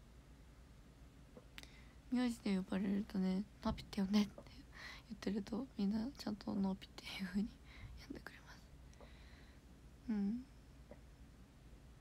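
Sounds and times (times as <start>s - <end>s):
woman's breathy voice: 10.1s - 10.6s.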